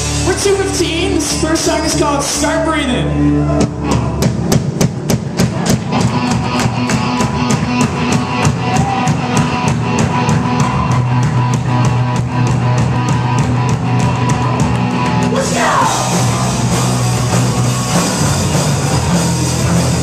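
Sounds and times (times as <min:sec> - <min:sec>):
electric guitars: 0:00.0 - 0:02.4, 0:03.0 - 0:20.0
bass guitar: 0:00.0 - 0:20.0
drum kit fast beat: 0:03.6 - 0:20.0.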